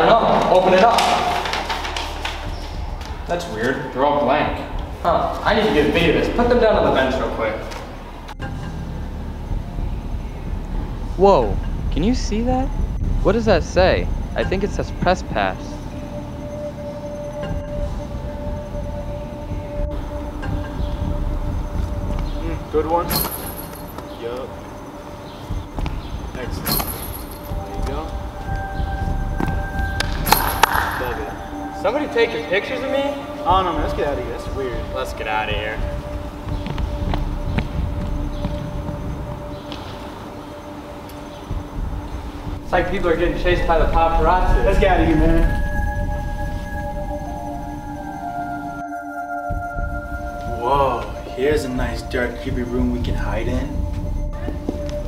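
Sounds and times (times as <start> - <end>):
low hum: 1.1 - 55.0.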